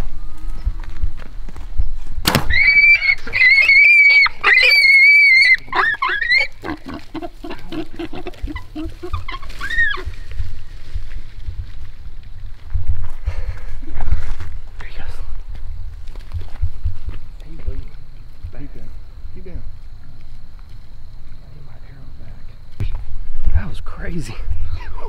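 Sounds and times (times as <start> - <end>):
sharp crack: 2.2 - 2.9
hog squealing: 2.5 - 10.2
hog grunting: 5.7 - 9.6.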